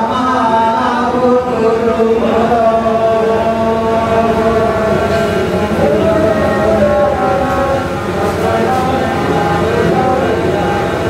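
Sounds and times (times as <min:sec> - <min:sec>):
man singing chant-like melody: 0:00.0 - 0:11.0.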